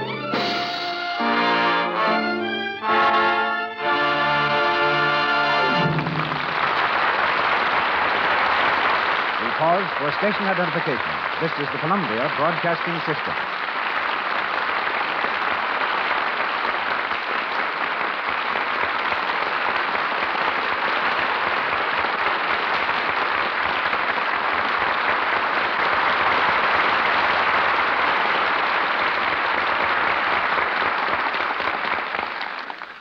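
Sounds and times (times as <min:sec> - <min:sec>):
audience applauding: 0:00.0 - 0:33.0.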